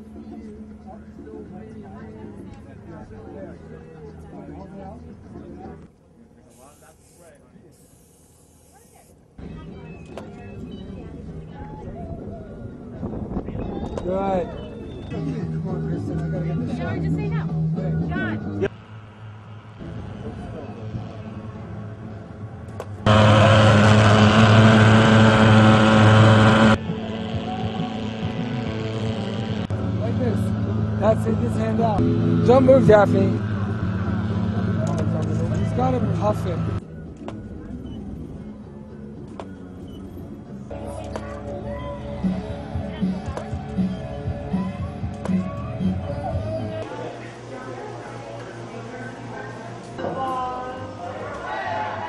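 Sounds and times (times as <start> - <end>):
faint indistinct voices: 0.0 - 25.2, 26.1 - 52.0
short bursts of hiss: 6.5 - 9.2
quiet steady drone: 18.2 - 45.1, 46.8 - 52.0
fogging machine loud buzz: 23.0 - 36.8.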